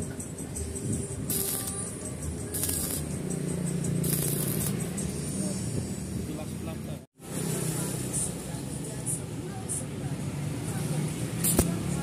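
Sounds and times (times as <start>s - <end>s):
welding arc crackle: 1.3s - 1.9s, 2.5s - 3.1s, 4.0s - 4.8s, 11.4s - 12.0s.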